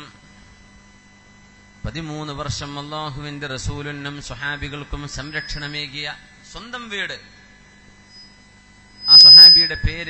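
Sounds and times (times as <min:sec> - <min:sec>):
electrical hum: 0:00.0 - 0:10.0
man speaking through amplifier: 0:01.8 - 0:07.3, 0:09.5 - 0:10.0.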